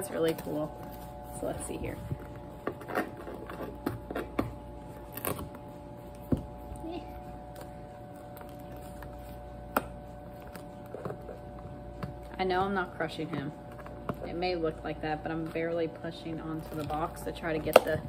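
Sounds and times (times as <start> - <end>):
faint steady hum: 0.0 - 18.0.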